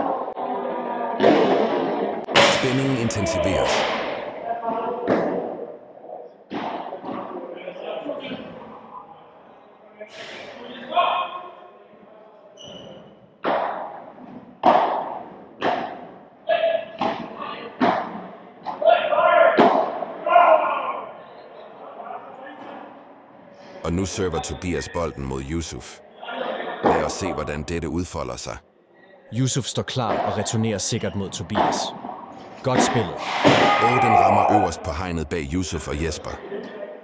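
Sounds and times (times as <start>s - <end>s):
players' voices: 2.3s - 4.3s, 23.8s - 26.0s, 26.8s - 28.6s, 29.3s - 32.0s, 32.6s - 36.5s.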